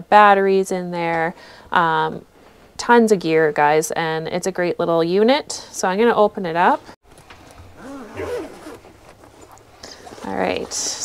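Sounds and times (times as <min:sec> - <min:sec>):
backpack zipper opening: 0:07.7 - 0:11.0.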